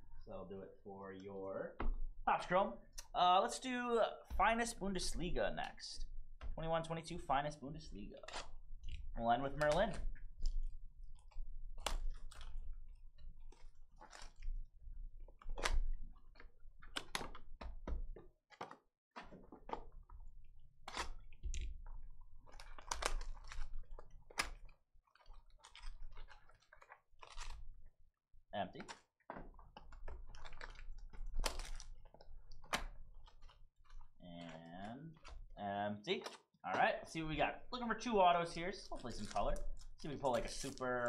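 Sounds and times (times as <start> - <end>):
plastic shrink wrap crinkling: 4.7 - 17.6, 19.3 - 27.9, 28.8 - 35.6, 37.2 - 41.0
cardboard box and packs handled: 28.8 - 35.6, 38.5 - 41.0.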